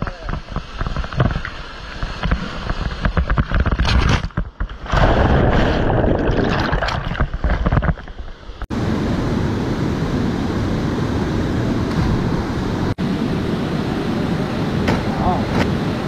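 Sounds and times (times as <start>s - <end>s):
white water churning and splashing: 4.6s - 8.6s.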